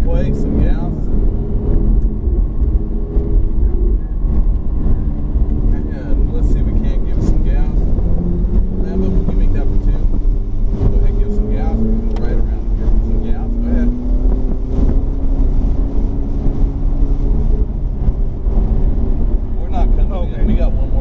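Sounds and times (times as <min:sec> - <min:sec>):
car engine accelerating: 0:00.0 - 0:21.0.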